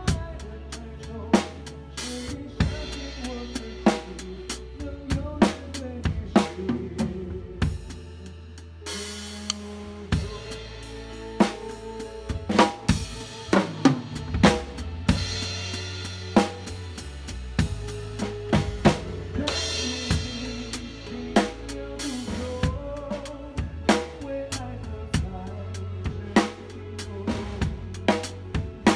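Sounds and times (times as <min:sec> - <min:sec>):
instruments holding steady notes: 0:00.0 - 0:28.9
snare and bass drum groove: 0:08.9 - 0:28.9.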